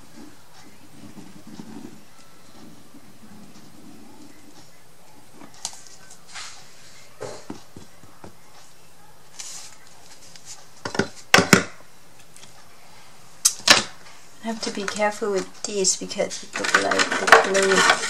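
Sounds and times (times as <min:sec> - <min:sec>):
faint rustling: 0:00.0 - 0:11.3.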